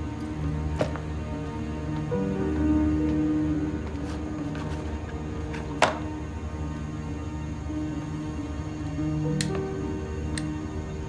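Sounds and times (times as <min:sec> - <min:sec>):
film music of sustained tones: 0:00.0 - 0:11.0.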